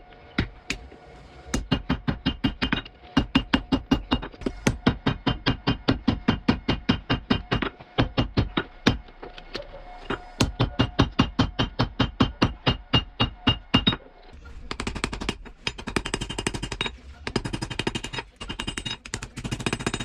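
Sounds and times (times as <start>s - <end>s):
hammer striking steel on anvil: 1.5s - 14.0s.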